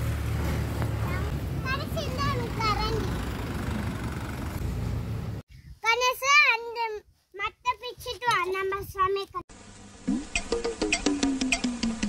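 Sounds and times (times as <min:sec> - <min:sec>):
child's high-pitched voice: 0:01.0 - 0:03.2, 0:05.7 - 0:09.4.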